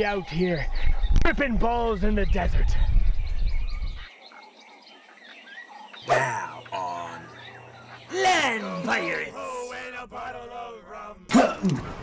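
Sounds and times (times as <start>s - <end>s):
small birds chirping: 0.0s - 10.8s.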